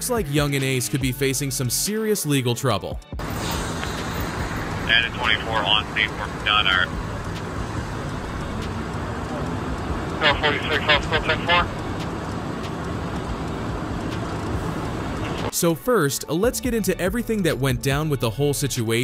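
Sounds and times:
traffic roar: 3.2s - 15.6s
voices calling out: 4.2s - 15.5s.

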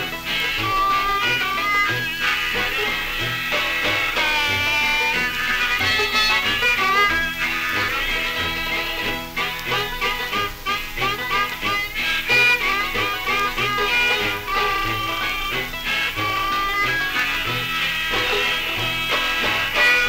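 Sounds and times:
jug band music record: 0.0s - 20.0s.

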